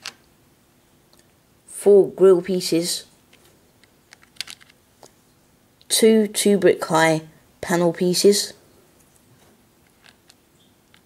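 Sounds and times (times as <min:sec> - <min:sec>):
plastic toy bricks clicking: 0:04.1 - 0:04.8.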